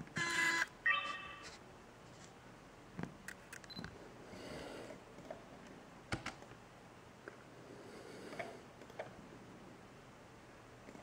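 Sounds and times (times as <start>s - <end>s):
brief high beep: 0.9s - 1.5s.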